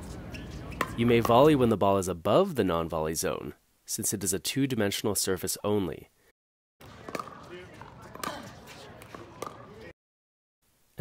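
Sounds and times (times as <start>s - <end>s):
outdoor court noise: 0.0s - 2.1s, 6.8s - 10.0s.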